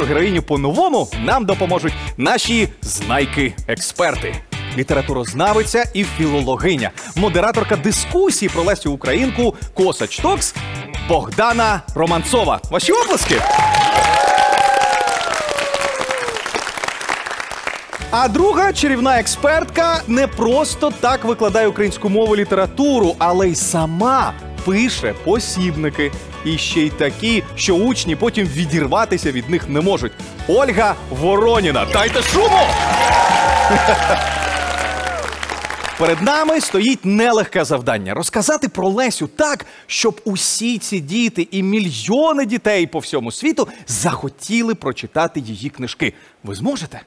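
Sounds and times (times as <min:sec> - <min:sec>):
studio audience applauding: 0:12.8 - 0:18.4, 0:31.7 - 0:37.0.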